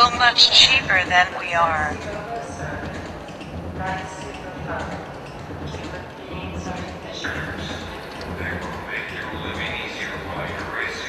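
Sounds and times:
robot voice from loudspeaker: 0.0s - 2.9s, 5.7s - 11.0s
steady low hum: 0.0s - 11.0s.

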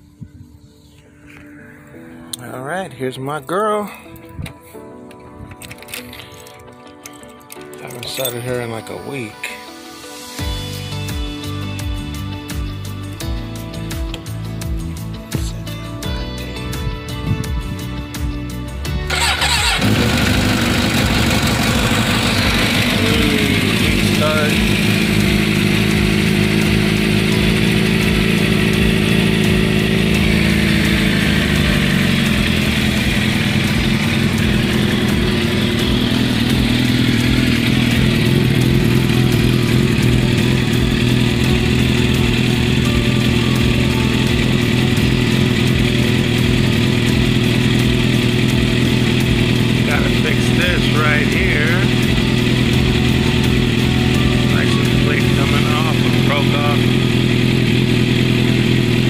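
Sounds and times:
motorcycle engine starting and idling: 19.0s - 59.0s.

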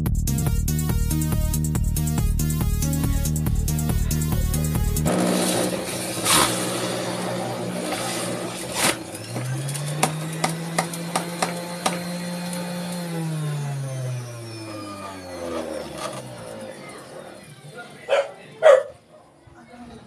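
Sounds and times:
juicer motor humming: 4.1s - 18.2s.

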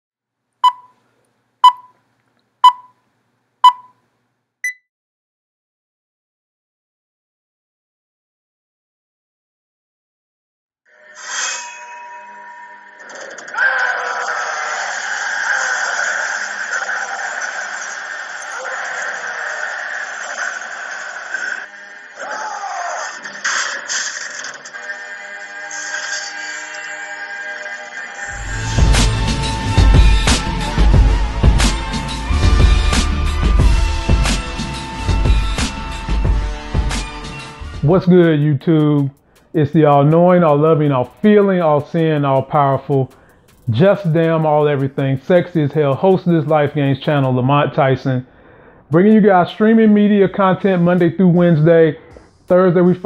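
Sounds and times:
countdown beeps: 0.6s - 0.9s, 1.6s - 1.9s, 2.6s - 3.0s, 3.6s - 3.9s
film soundtrack music: 28.2s - 38.4s.

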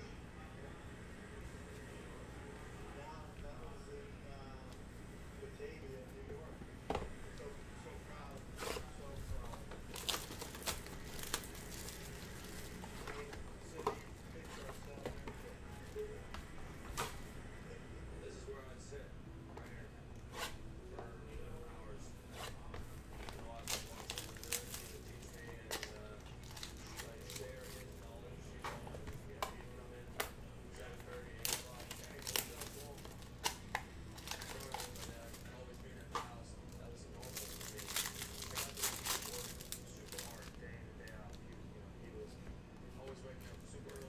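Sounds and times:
card wrappers tearing and crinkling: 8.6s - 15.2s, 23.2s - 28.1s, 30.8s - 36.1s, 37.1s - 41.2s.

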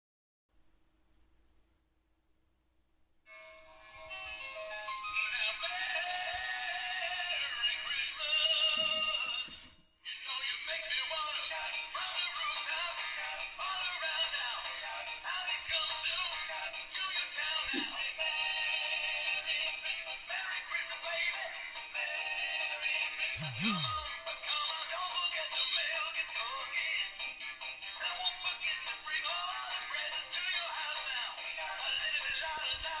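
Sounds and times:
toy hat song through small speaker: 4.1s - 33.0s.

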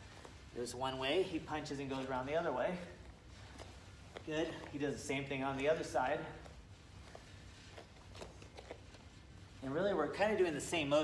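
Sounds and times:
faint light taps and rustles: 0.0s - 9.6s
low steady hum: 0.0s - 11.0s.

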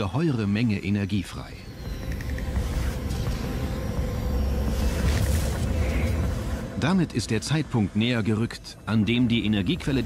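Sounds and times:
deep rumbling drone: 1.5s - 10.0s.

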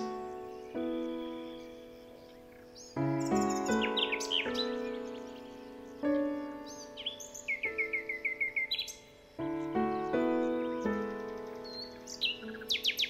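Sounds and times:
gentle music of held chords: 0.0s - 13.0s
songbirds chirping: 0.0s - 13.0s.

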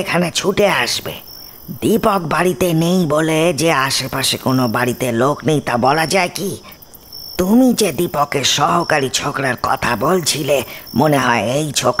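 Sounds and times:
person speaking: 0.0s - 6.8s, 7.4s - 12.0s
crickets chirping: 0.0s - 12.0s.

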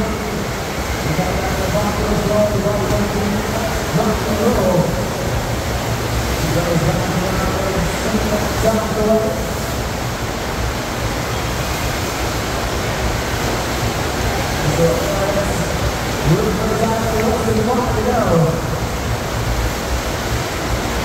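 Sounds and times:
loud rush of water: 0.0s - 21.0s.

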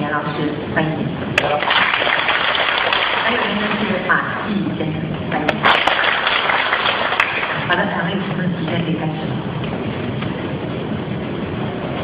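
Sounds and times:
lecture hall background noise: 0.0s - 12.0s.

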